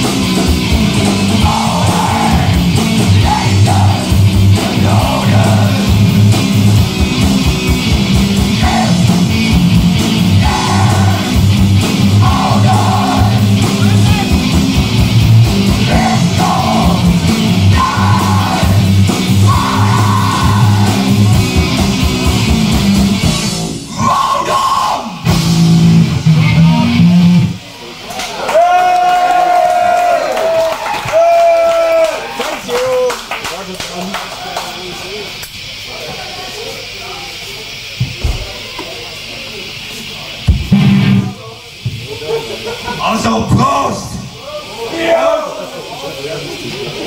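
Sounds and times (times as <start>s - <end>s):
metal band playing live: 0.0s - 27.8s, 40.4s - 41.8s
long held yells: 8.6s - 9.4s, 10.3s - 11.4s, 12.1s - 14.4s, 15.8s - 21.2s, 23.9s - 25.3s, 28.3s - 33.2s
crowd hubbub: 26.4s - 30.4s, 31.1s - 47.0s.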